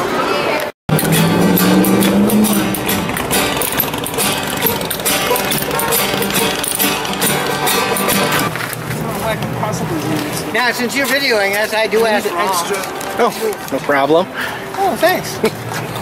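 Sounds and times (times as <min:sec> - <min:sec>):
plucked upright bass: 0:00.9 - 0:08.5
acoustic guitars strumming: 0:00.9 - 0:08.6
banjo picking: 0:00.9 - 0:08.6.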